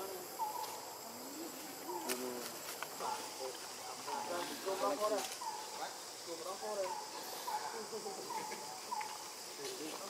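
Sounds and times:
high insect buzz: 0:00.0 - 0:10.0.

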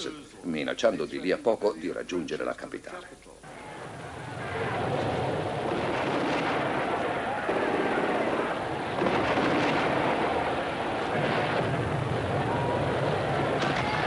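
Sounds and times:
sharp blasts: 0:03.4 - 0:14.0
dense battle rumble: 0:03.5 - 0:14.0.

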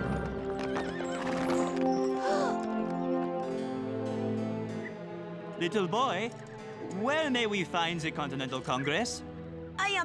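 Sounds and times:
hooves clip-clopping: 0:00.0 - 0:03.0
background music: 0:00.0 - 0:10.0
horse whinnying: 0:00.6 - 0:02.7.

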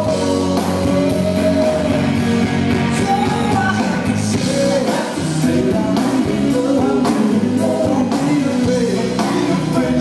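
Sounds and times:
live rock band playing: 0:00.0 - 0:10.0
person singing: 0:00.0 - 0:10.0.

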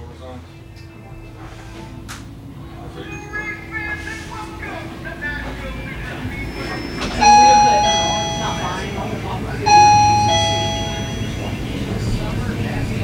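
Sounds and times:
murmur of voices: 0:00.0 - 0:12.2
two-note door chime: 0:07.2 - 0:11.8.

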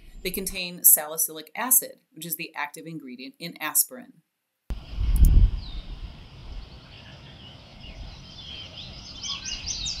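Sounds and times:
songbird singing: 0:04.7 - 0:10.0.

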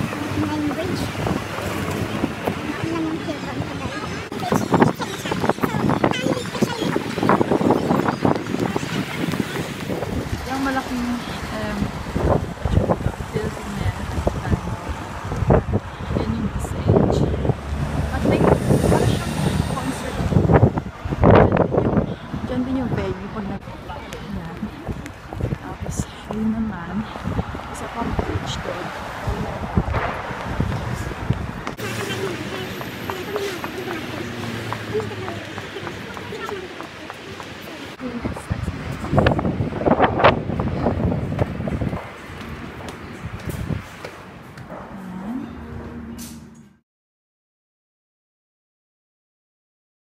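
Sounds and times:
voices: 0:00.0 - 0:43.8, 0:44.6 - 0:46.7
wind rumbling on microphone: 0:00.0 - 0:46.6
bus passing: 0:00.0 - 0:46.8
road traffic passing: 0:00.0 - 0:46.8.

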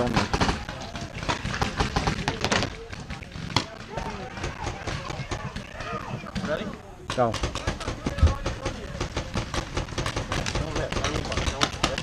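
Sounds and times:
players shouting: 0:03.6 - 0:06.8.

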